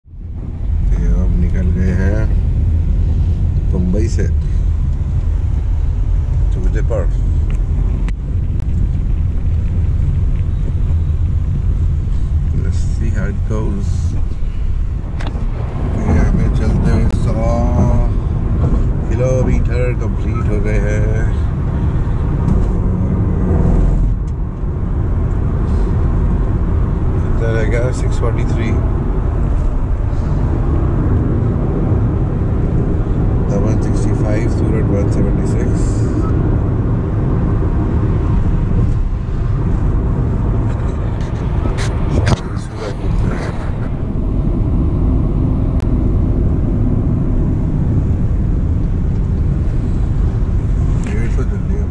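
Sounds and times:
road and tyre rumble in car: 0.0 - 51.9
person speaking: 15.9 - 18.2.

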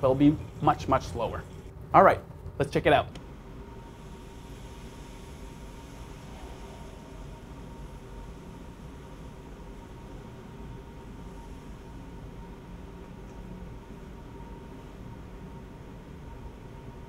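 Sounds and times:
extraction fan hum and hiss: 0.0 - 17.0.

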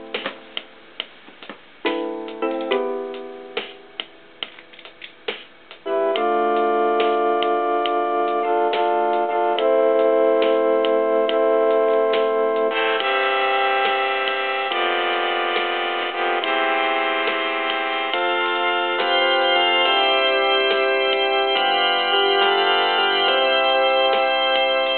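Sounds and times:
electronic keyboard playing hymn chords: 0.0 - 1.0, 1.8 - 24.9
light ticking rhythm: 0.0 - 24.9.

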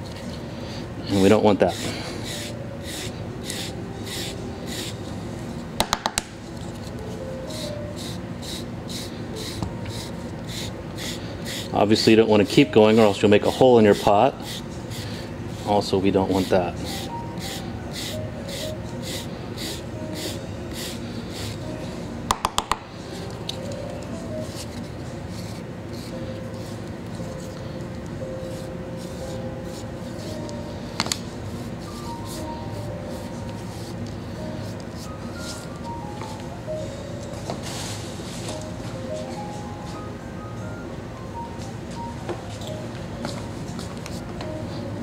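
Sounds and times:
quiet music: 0.0 - 45.0.

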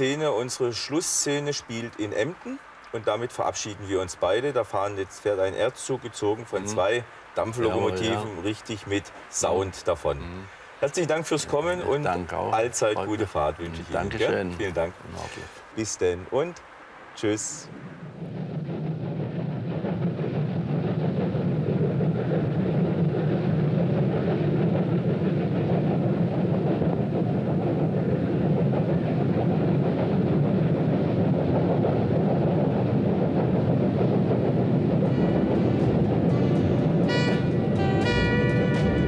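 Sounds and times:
steam train rumbling past: 3.0 - 39.0
music: 35.2 - 39.0.

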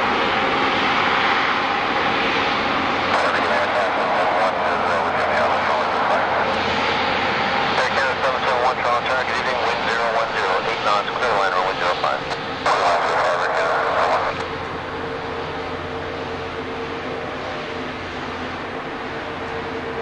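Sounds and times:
jet engines humming: 0.0 - 20.0.

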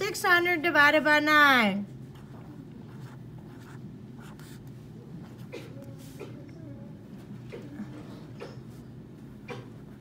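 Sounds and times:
pen scratching on paper: 2.1 - 5.5.

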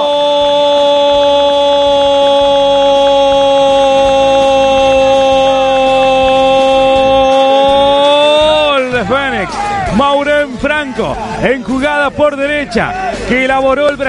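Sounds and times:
commentator shouting goal: 0.0 - 14.0.

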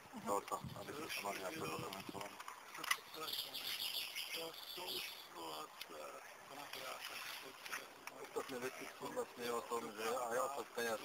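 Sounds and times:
small group talking quietly: 0.0 - 11.0.

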